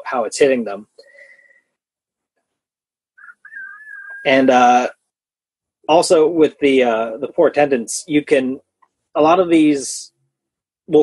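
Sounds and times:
light breathy hiss: 1.0s - 1.7s
faint thin whistle: 3.2s - 4.3s.

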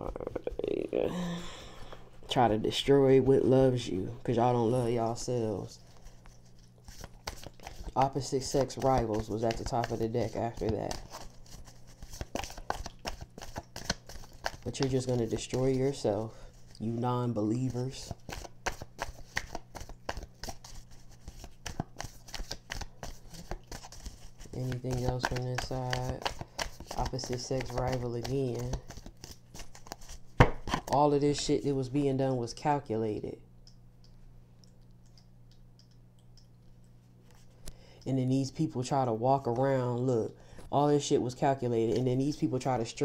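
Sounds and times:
cards being shuffled: 4.6s - 31.7s.

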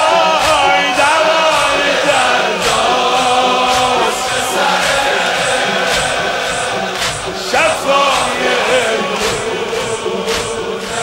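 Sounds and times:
men chanting in unison: 0.0s - 11.0s
hands slapping chests: 0.4s - 11.0s.

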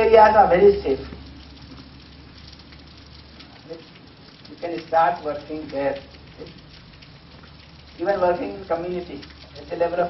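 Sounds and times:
room and recording hiss: 0.0s - 10.0s.

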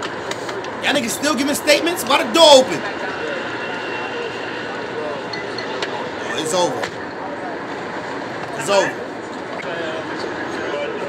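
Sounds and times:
city street background noise: 0.0s - 11.0s
faint indistinct voices: 2.8s - 11.0s.

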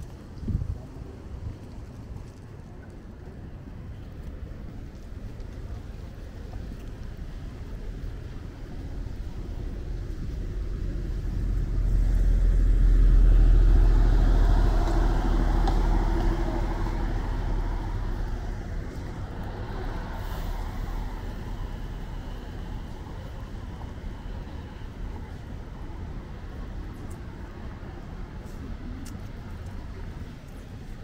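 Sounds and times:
pickup truck driving past: 10.6s - 23.0s.

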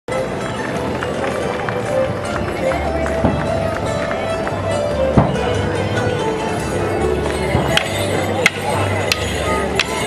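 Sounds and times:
crowd voices: 0.1s - 10.0s
folk dance tune: 0.1s - 10.0s.

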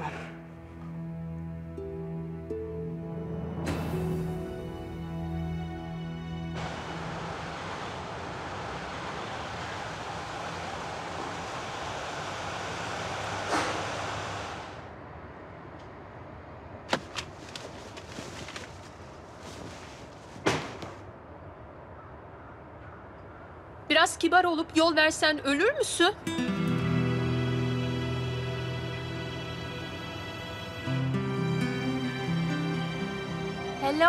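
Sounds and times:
steady rushing noise: 6.6s - 15.0s.

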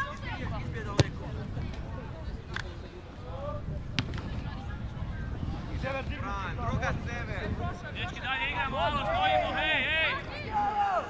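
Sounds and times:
low wind rumble: 0.0s - 11.0s
football being kicked: 0.9s - 1.2s.

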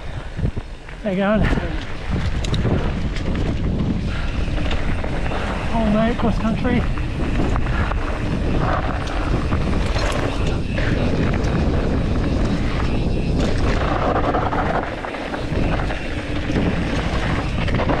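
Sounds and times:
bike clicks and rattles: 0.0s - 18.0s
bike tyres rolling on dirt: 0.0s - 18.0s
wind buffeting microphone: 0.0s - 18.0s.

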